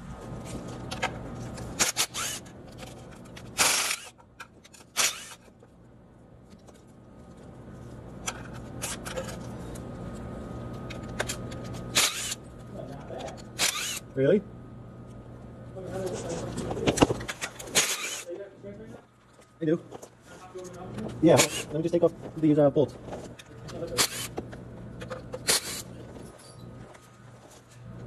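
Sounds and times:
steady low hum: 0.0s - 28.0s
cordless ratchet bursts: 1.8s - 2.5s, 3.6s - 5.5s, 11.9s - 12.4s, 13.5s - 14.0s, 17.6s - 18.3s, 21.4s - 21.8s, 23.9s - 24.4s, 25.4s - 25.9s.

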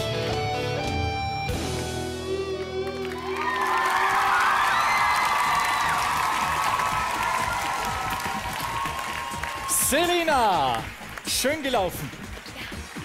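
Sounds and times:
audience applauding and cheering: 1.7s - 13.0s
high shouts: 3.2s - 10.6s.

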